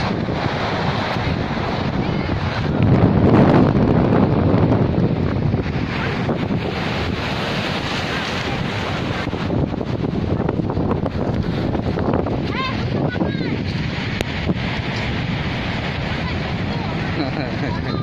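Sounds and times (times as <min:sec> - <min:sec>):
surf breaking on pebble beach: 0:00.0 - 0:18.0
wind buffeting microphone: 0:00.0 - 0:18.0.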